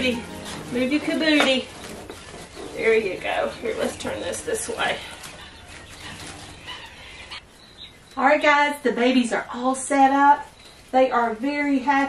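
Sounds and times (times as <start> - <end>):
wood shavings rustling: 0.0 - 7.3
quail chicks peeping: 0.0 - 11.9.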